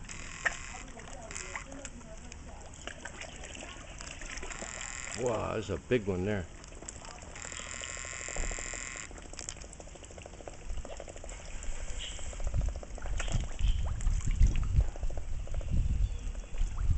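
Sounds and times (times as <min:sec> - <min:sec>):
water sloshing and slurping: 0:00.0 - 0:16.9.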